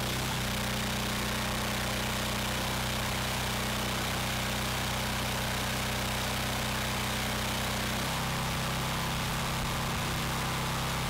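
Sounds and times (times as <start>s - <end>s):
gas engine running steadily: 0.0s - 11.0s.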